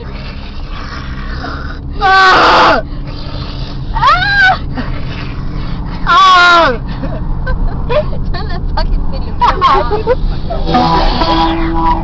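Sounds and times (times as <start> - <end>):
steady low hum: 6.9 - 12.0
person wailing cries: 10.7 - 12.0.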